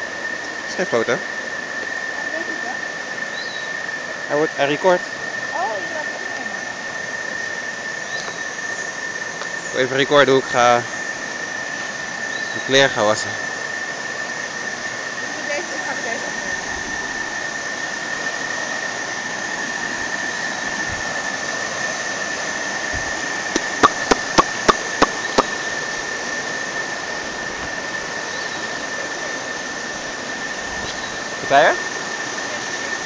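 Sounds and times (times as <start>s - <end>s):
sharp clicks: 23.6s - 25.5s
thin high-pitched tone: 23.6s - 25.5s.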